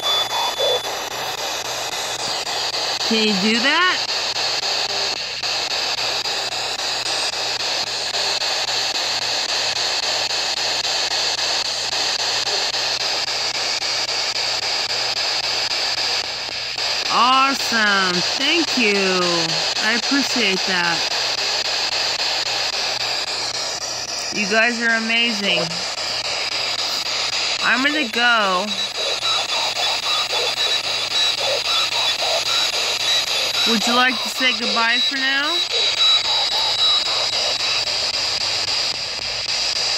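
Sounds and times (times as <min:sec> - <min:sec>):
constant high whine: 0:00.0 - 0:39.9
radio static sweeping stations: 0:00.0 - 0:39.9.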